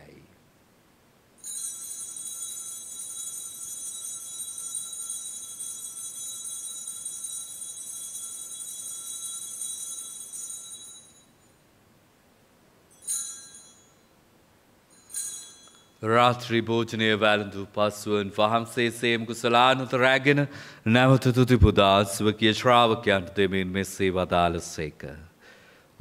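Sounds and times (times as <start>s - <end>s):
altar bells ringing: 1.4s - 11.6s, 12.9s - 14.2s, 14.8s - 16.6s.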